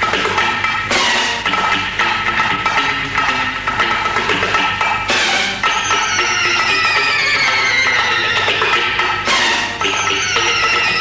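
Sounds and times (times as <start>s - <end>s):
instrumental theme music: 0.0s - 11.0s
percussion: 0.0s - 11.0s.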